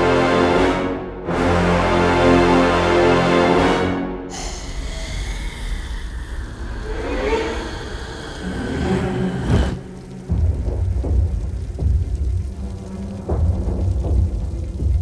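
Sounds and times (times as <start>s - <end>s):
dramatic film score swell: 0.0s - 14.8s
deep heavy drum hits: 10.0s - 15.0s.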